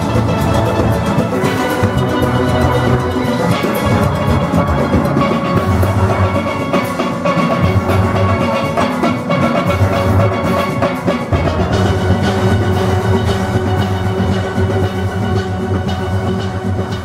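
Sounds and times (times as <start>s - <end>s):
drums keeping beat: 0.0s - 17.0s
steel pan melody: 0.0s - 17.0s.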